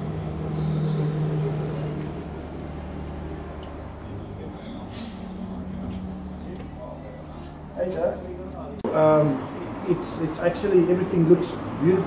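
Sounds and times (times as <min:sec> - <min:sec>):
low mechanical hum: 0:00.0 - 0:09.7.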